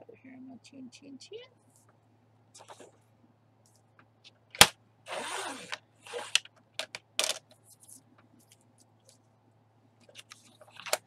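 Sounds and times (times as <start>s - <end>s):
paper scraping across board: 5.1s - 6.4s.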